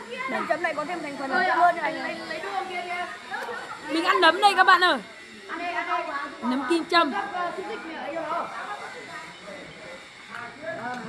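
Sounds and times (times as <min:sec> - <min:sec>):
people chatting: 0:00.0 - 0:05.0, 0:05.6 - 0:11.0.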